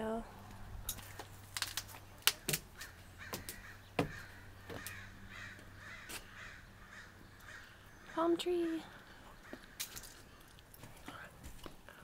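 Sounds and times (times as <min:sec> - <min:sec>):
footsteps on deck stairs: 0:00.4 - 0:06.3, 0:09.4 - 0:12.0
harsh bird calls: 0:02.3 - 0:10.5.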